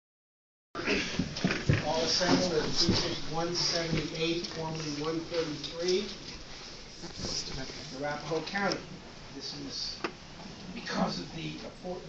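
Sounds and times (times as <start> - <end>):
people speaking: 1.8 - 6.2, 7.1 - 10.1, 10.8 - 12.0.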